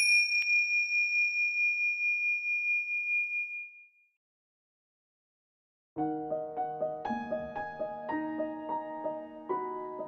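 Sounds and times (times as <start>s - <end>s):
bell-like chime ringing: 0.0s - 4.1s.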